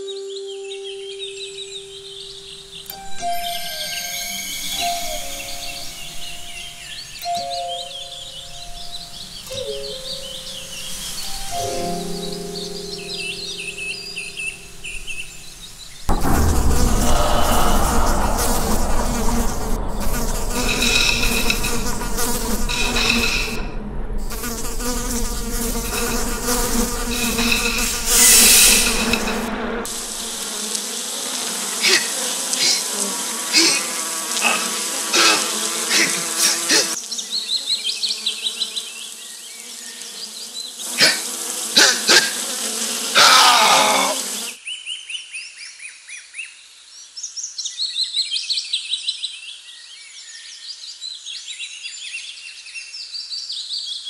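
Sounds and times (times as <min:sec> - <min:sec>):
buzzing droning tones: 0:16.1 - 0:30.5.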